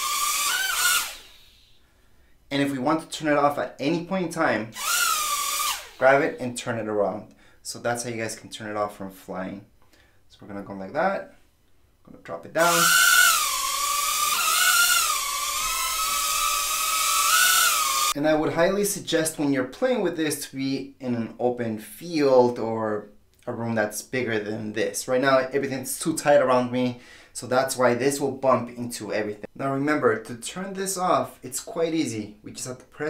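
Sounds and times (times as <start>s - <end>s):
toy drone propellers whirring: 0.0s - 1.6s, 4.8s - 6.1s, 12.6s - 18.2s.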